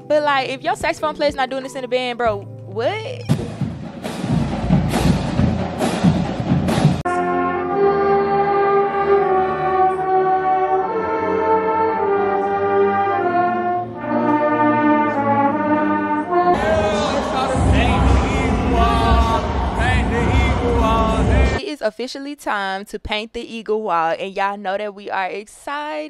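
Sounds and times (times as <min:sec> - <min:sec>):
marching band drum beats: 0:03.3 - 0:07.1, 0:16.5 - 0:21.6
brass sustained chords: 0:07.0 - 0:21.6
crowd noise: 0:16.5 - 0:21.6.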